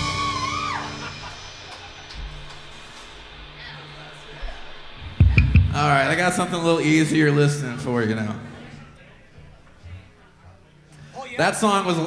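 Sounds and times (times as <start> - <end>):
low steady hum: 1.5 - 11.2
band chord with guitar ringing: 3.8 - 9.6
loud thumps: 5.0 - 6.6
man talking: 5.7 - 10.1, 11.1 - 12.0.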